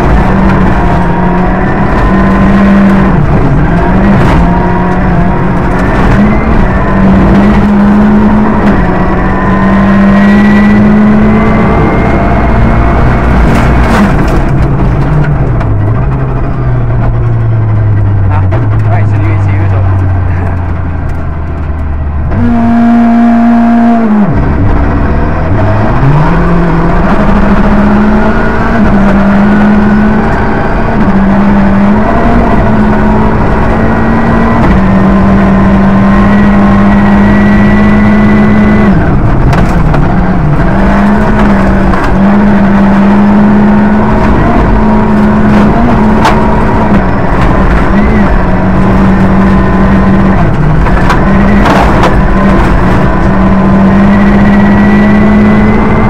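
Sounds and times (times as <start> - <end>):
rally car engine: 0.0 - 56.0.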